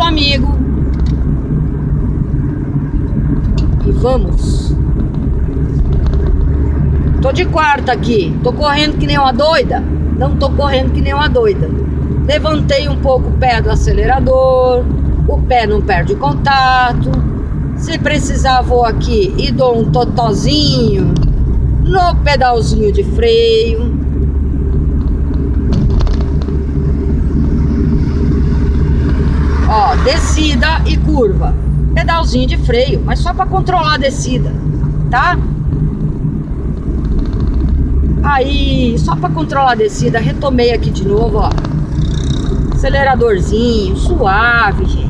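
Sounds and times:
car engine and road noise: 0.0 - 45.0.

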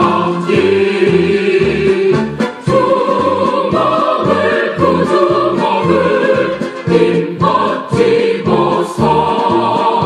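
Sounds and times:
choir singing a marching song: 0.0 - 10.0.

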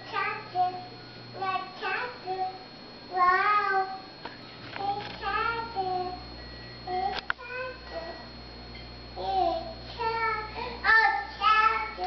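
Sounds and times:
toddler singing: 0.0 - 4.0, 4.8 - 6.2, 6.9 - 8.3, 9.2 - 12.0.

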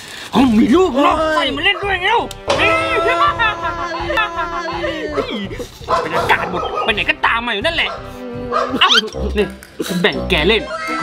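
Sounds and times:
background music: 0.3 - 11.0.

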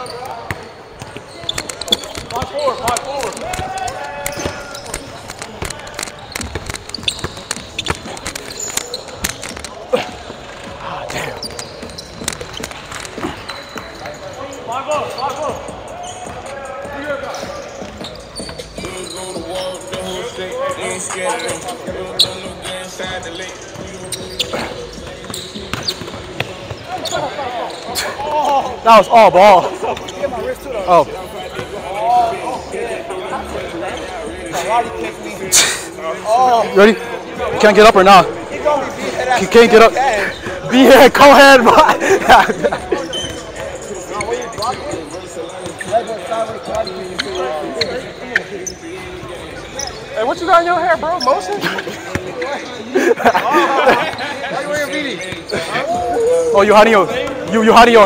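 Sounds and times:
players' voices: 0.0 - 58.0.

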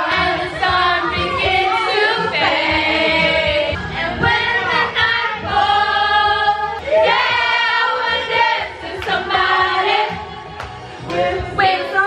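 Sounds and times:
karaoke music: 0.0 - 12.0
women singing karaoke: 0.0 - 12.0.

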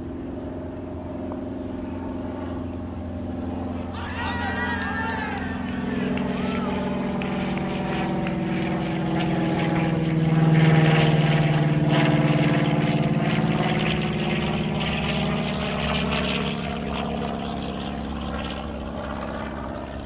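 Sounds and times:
propeller aircraft engine drone: 0.0 - 20.0.

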